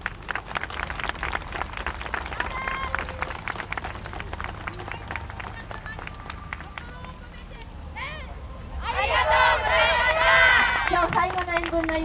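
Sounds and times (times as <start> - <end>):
audience applause: 0.0 - 7.1, 10.2 - 12.0
crowd voices: 2.3 - 12.0.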